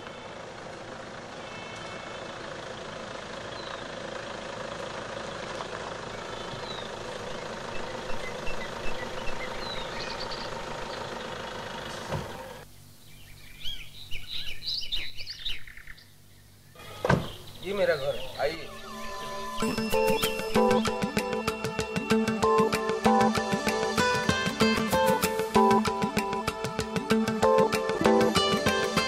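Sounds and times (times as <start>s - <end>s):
birds chirping: 0.0s - 4.6s, 5.2s - 29.0s
car engine idling: 0.0s - 12.9s, 16.5s - 29.0s.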